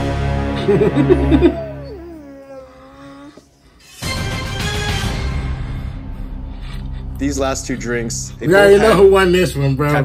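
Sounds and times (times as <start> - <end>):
whining voice-like call: 1.3 - 3.4.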